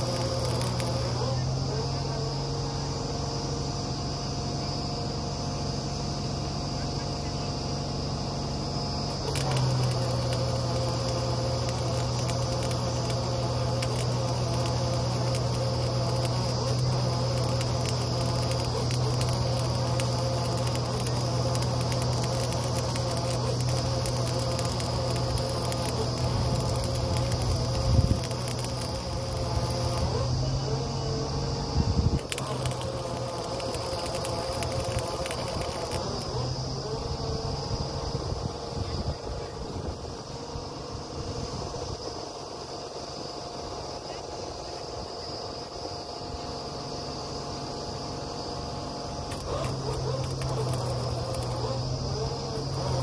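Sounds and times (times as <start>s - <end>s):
drilling rig humming and rattling: 0.0s - 3.4s, 8.1s - 38.7s, 49.2s - 53.0s.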